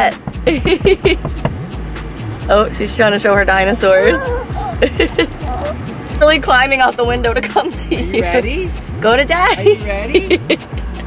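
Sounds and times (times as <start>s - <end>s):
vehicle engine rumbling: 0.0s - 11.0s
people laughing: 0.5s - 1.3s, 4.0s - 5.7s, 9.4s - 11.0s.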